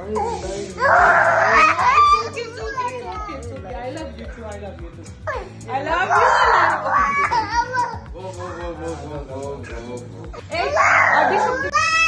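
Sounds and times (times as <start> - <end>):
toddler fussing and babbling: 0.0 - 3.5, 5.3 - 8.7, 10.4 - 12.0
adult voices: 0.0 - 12.0
background music: 0.0 - 12.0.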